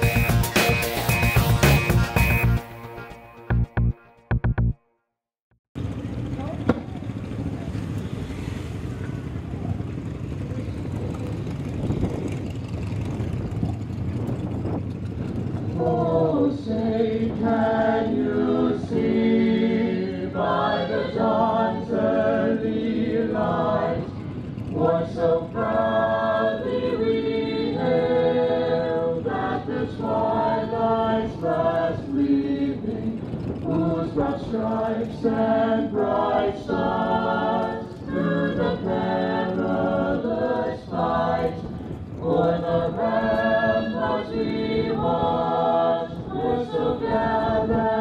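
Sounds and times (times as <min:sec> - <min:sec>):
crowd murmur: 0:06.1 - 0:13.2
singing with long held notes: 0:15.7 - 0:48.0.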